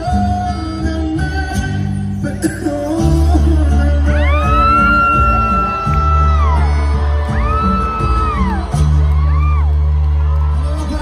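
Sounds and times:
live band music with bass: 0.0s - 11.0s
high-pitched whoops: 4.0s - 10.9s.

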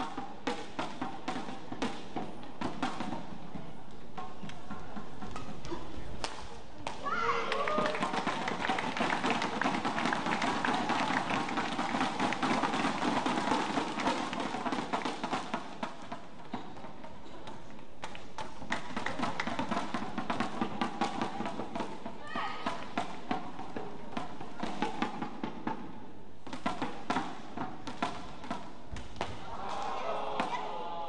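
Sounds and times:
rising shout: 7.0s - 8.0s, 29.4s - 31.0s
crowd cheering and clapping: 7.3s - 12.6s, 29.4s - 31.0s
racket hitting shuttlecock: 26.4s - 30.8s.

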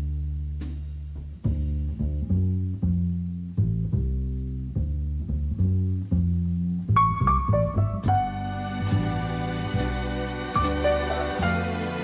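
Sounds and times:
plucked bass line: 0.0s - 12.0s.

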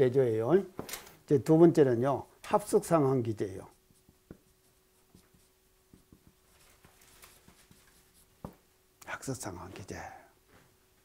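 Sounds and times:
marker on whiteboard: 2.5s - 8.6s.

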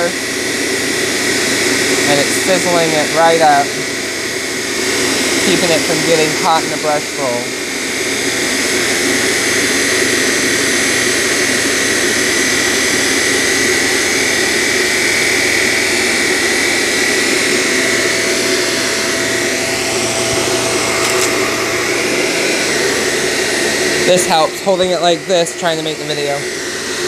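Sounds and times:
upright vacuum cleaner running: 0.0s - 27.0s.

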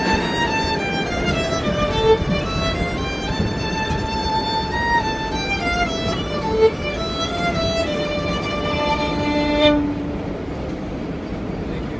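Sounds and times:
violin notes: 0.0s - 11.2s
subway car rumble: 0.0s - 11.9s.

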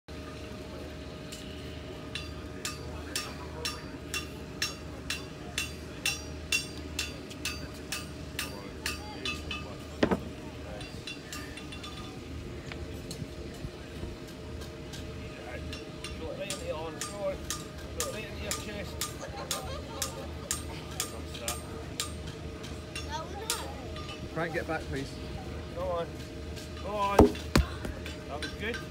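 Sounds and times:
steady hum: 27.0s - 28.2s
loud knock: 27.2s - 27.9s.

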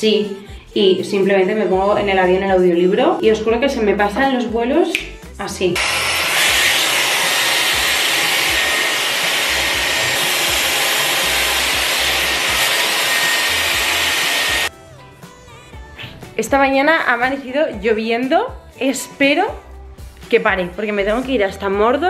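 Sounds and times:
hot air brush blowing: 5.8s - 14.7s.

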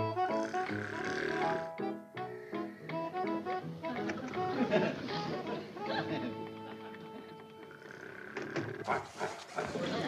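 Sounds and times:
man snoring and snorting: 0.2s - 1.8s, 7.7s - 9.8s.

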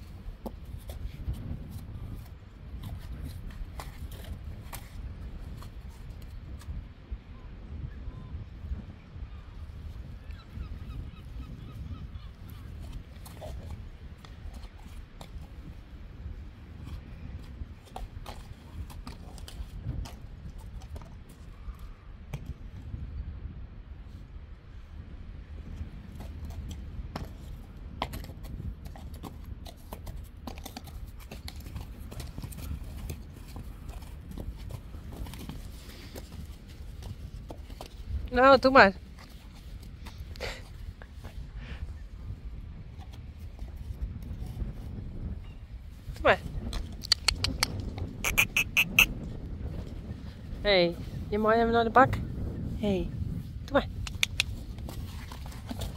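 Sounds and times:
horse hooves on concrete: 0.0s - 6.8s, 11.8s - 22.8s, 25.6s - 41.5s, 46.1s - 50.2s, 53.5s - 55.9s
wind buffeting microphone: 0.0s - 55.9s.

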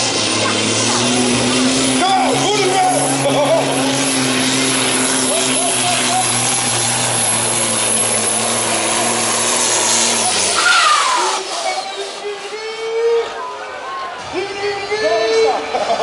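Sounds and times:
truck diesel engine under load: 0.0s - 14.4s
falling engine whine: 0.0s - 14.9s.

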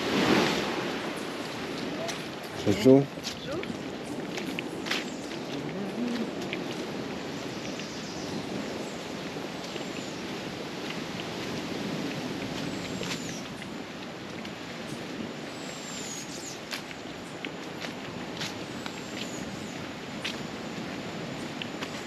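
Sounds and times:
footsteps crunching on leaves: 0.0s - 7.7s, 9.2s - 14.5s.

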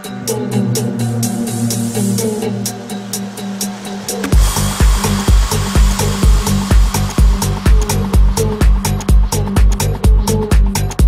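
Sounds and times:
held low synth chord: 0.0s - 10.3s
hissing noise wash: 0.0s - 10.8s
ticking hi-hats: 0.0s - 11.0s
steady kick drum: 0.3s - 11.0s.

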